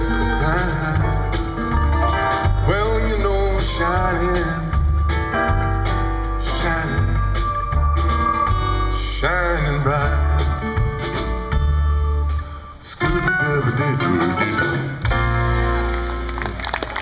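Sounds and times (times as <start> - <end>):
live blues band playing: 0.0 - 17.0
rising guitar slide: 6.3 - 11.6.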